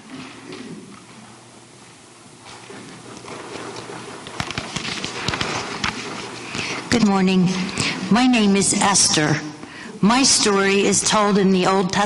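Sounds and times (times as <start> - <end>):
paper rustling: 2.5 - 6.9.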